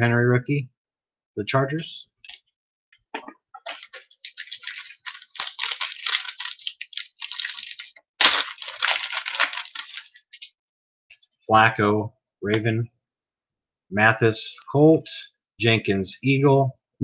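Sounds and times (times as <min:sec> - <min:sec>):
foil wrapper tearing and crinkling: 0:03.7 - 0:10.5.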